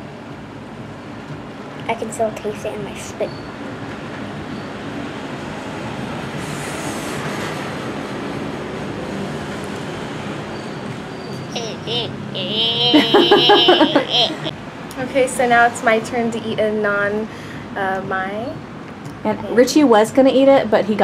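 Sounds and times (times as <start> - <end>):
street traffic hum: 0.0 - 21.0
boy's drawn-out wordless cry: 11.6 - 14.5.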